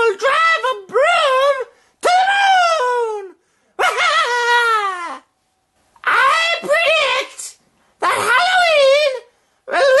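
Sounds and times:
person making high-pitched cries: 0.0 - 5.3, 6.0 - 10.0.

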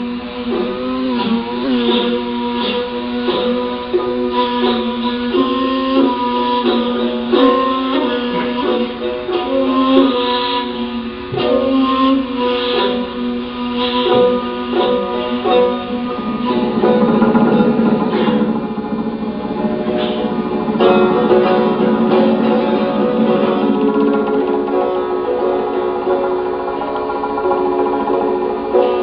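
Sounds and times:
plucked long-necked lute melody: 0.0 - 29.0.

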